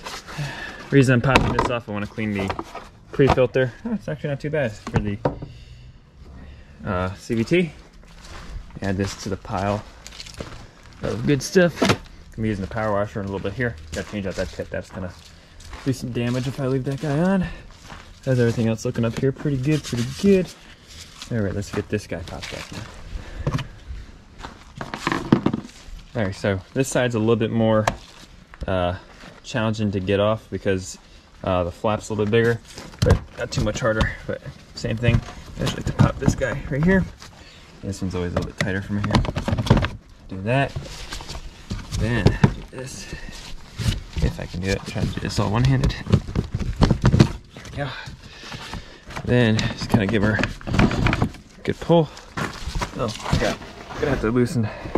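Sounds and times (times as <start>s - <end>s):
quiet handling: 6.2s - 28.8s
footsteps: 7.0s - 26.4s, 40.5s - 54.9s.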